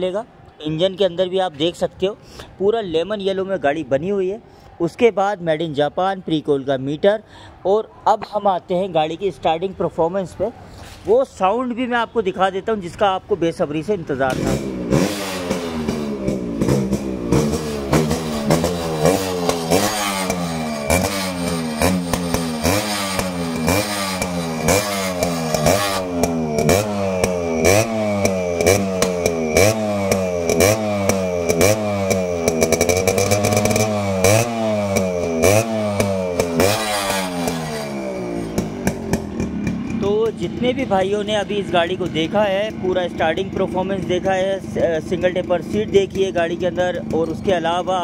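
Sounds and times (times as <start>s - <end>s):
motorcycle engine revving: 14.2s - 48.0s.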